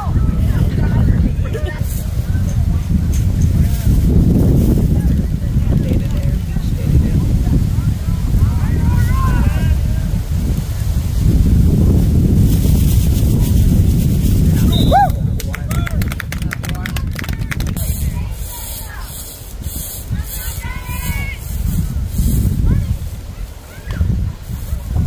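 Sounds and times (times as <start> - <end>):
wind rumbling on microphone: 0.0 - 25.0
brief high whistle: 14.7 - 15.2
people clapping: 15.0 - 17.8.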